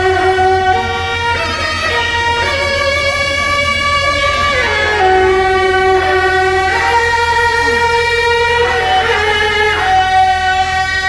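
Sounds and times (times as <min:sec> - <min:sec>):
double-reed shawm melody: 0:00.0 - 0:11.0.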